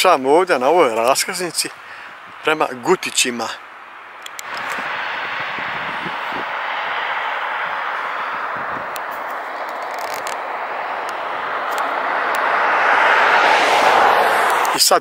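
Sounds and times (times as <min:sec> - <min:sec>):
tyres hissing on asphalt: 0:04.4 - 0:15.0.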